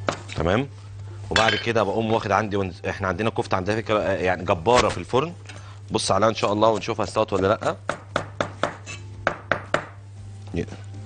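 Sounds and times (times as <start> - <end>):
cleaver chopping on wooden board: 6.7 - 10.0.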